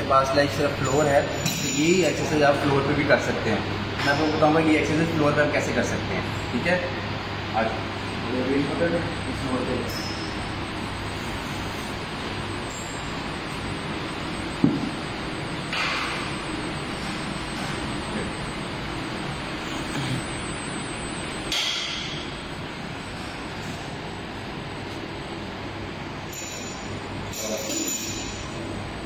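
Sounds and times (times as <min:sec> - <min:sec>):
gym hall background noise: 0:00.0 - 0:29.0.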